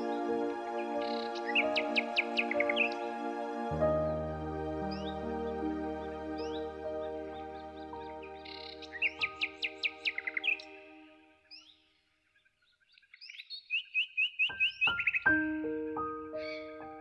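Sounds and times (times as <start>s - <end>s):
soft piano music: 0.0s - 11.4s, 14.4s - 17.0s
songbird chirps: 0.0s - 17.0s.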